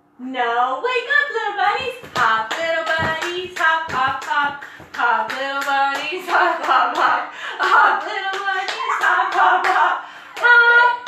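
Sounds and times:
woman singing children's song: 0.2s - 11.0s
hands clapping to a beat: 2.0s - 10.6s.

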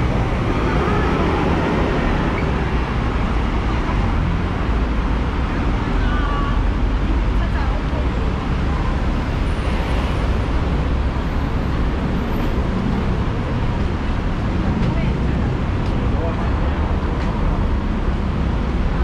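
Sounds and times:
crowd chatter: 0.0s - 10.4s
road traffic rumble: 0.0s - 19.0s.

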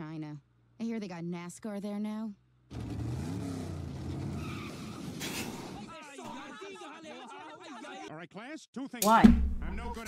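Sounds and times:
cars crashing: 2.7s - 5.9s
cartoon car engines racing: 2.7s - 5.9s
tyres screeching: 2.7s - 5.9s.

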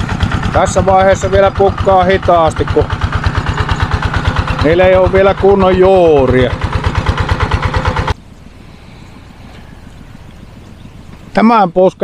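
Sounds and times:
small pump engine puttering: 0.0s - 11.4s.

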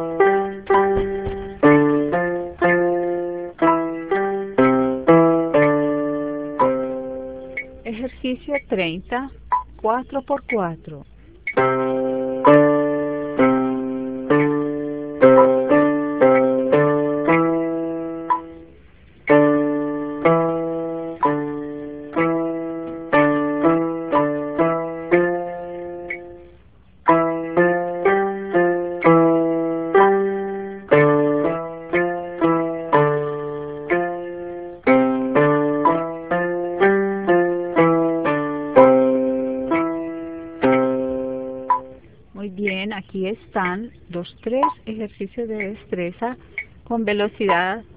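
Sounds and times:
electronic keyboard piano exercise: 0.0s - 47.9s.

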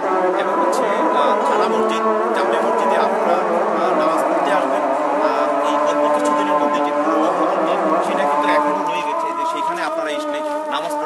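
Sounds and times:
man speaking: 0.3s - 11.0s.

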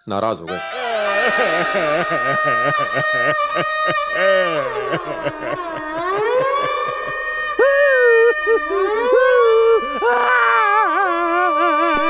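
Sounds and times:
man wailing: 0.6s - 12.0s.

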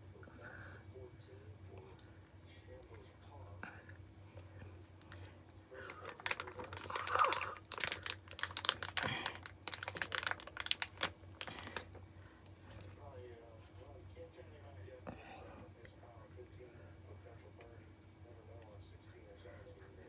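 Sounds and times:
foil pouch crinkling: 5.8s - 12.0s.

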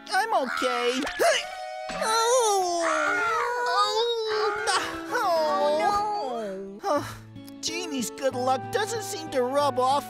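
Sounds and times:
background music: 0.0s - 10.0s
cartoon character voice sounds: 0.2s - 6.6s.

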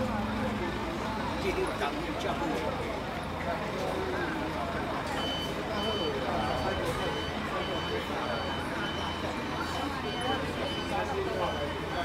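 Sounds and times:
coach engine rumble: 0.0s - 12.0s
reversing alarm beeping: 5.1s - 12.0s.

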